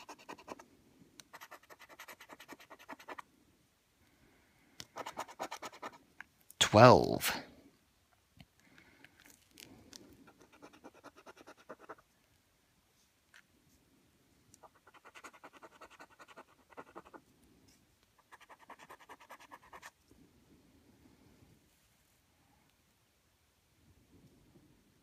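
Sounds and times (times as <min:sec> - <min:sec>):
coin scratching a scratchcard: 0:00.0 - 0:00.6, 0:01.3 - 0:03.2, 0:05.0 - 0:06.0, 0:10.3 - 0:12.0, 0:14.6 - 0:17.2, 0:18.2 - 0:19.9.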